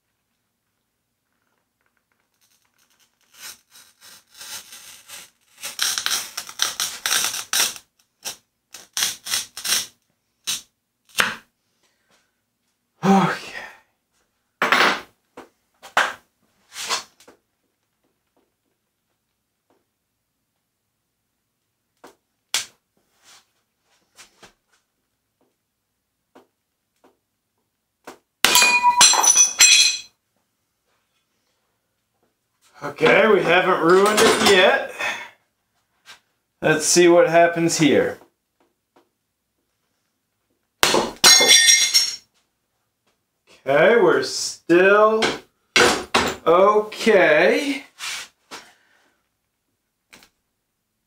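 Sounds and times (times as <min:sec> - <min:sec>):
glass cutter scratching mirror: 0:02.9 - 0:09.9
glass ringing: 0:28.5 - 0:30.1, 0:41.3 - 0:42.2.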